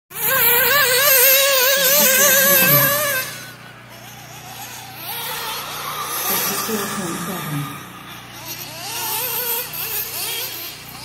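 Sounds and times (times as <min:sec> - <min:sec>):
rc car engine high-pitched whine: 0:00.1 - 0:11.0.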